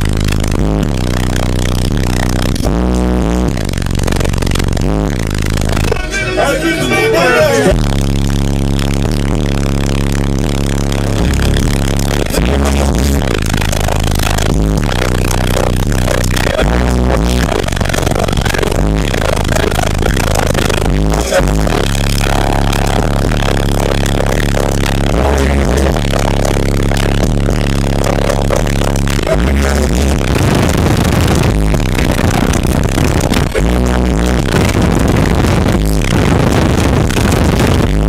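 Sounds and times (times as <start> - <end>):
bass-heavy music through subwoofers: 0.0 - 38.0
rough rattly noise: 9.2 - 38.0.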